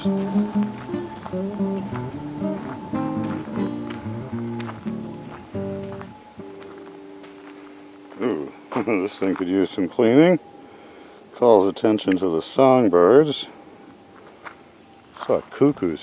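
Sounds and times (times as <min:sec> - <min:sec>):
instrumental background music: 0:00.0 - 0:08.4.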